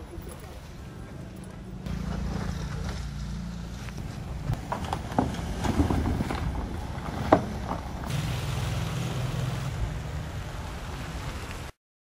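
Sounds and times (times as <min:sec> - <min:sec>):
car engine humming: 0:00.0 - 0:11.7.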